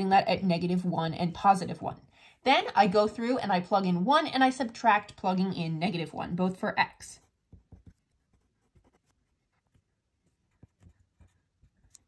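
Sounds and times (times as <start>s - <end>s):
pen writing on paper: 7.2s - 12.0s.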